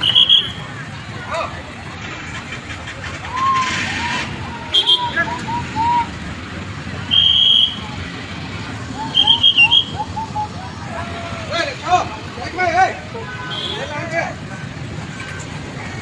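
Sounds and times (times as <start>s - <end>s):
people's voices: 0.0s - 16.0s
traffic rumble: 0.0s - 16.0s.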